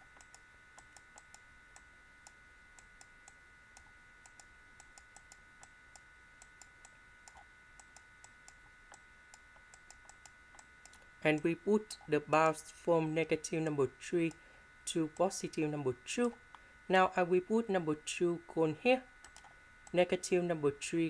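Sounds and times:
faint electrical whine: 0.0s - 21.0s
computer mouse clicking: 0.1s - 11.1s, 19.2s - 19.5s.

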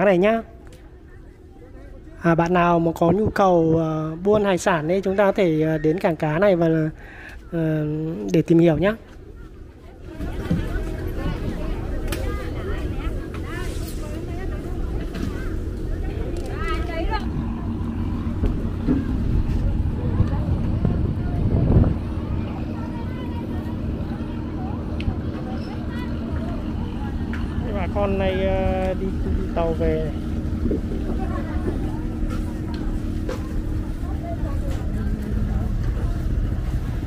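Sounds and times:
boat engine droning: 0.0s - 37.0s
people talking: 0.0s - 37.0s.

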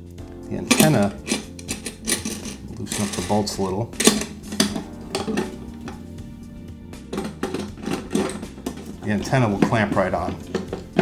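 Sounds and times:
background music: 0.0s - 11.0s
metal clinks and rattles: 0.7s - 6.0s, 7.0s - 11.0s.

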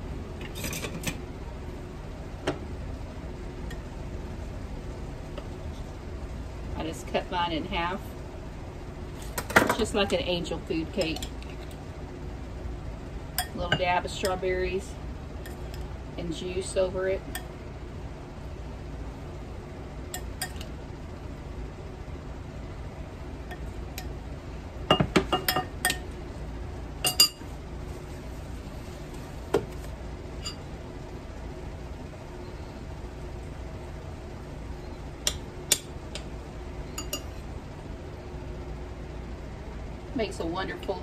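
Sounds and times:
low steady hum: 0.0s - 41.0s
metal spoon clinking on bowl: 37.0s - 37.4s.

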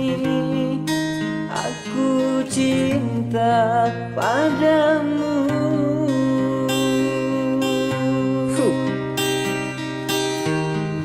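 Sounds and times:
man singing: 0.0s - 9.4s
acoustic guitar: 0.0s - 11.0s.

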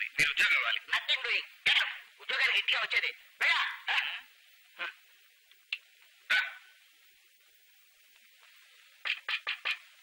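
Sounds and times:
faint steady hiss: 0.0s - 10.0s
dog bark: 3.4s - 4.2s, 6.3s - 6.8s.

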